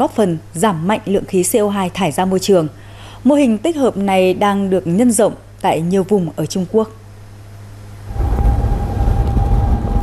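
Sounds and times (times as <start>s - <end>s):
engine whine: 7.8s - 10.0s
motorboat engine rumble: 7.8s - 10.0s.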